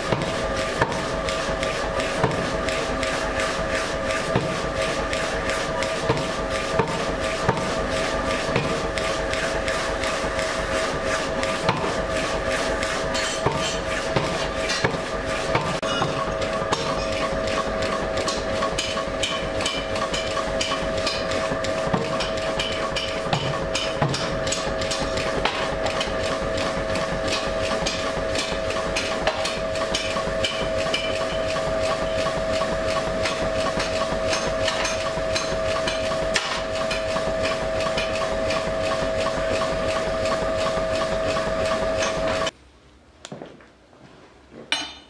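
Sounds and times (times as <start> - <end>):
power hammer striking steel: 13.1 - 17.3, 18.2 - 26.1, 27.3 - 31.5, 33.2 - 38.2.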